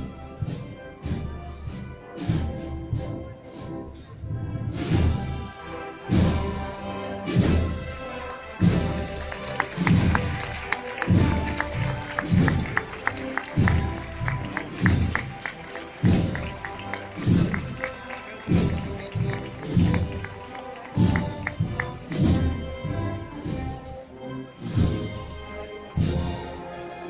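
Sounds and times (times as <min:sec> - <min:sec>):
procession band playing a march: 0:00.0 - 0:03.7, 0:04.5 - 0:27.0
deep drum strokes: 0:08.6 - 0:22.8.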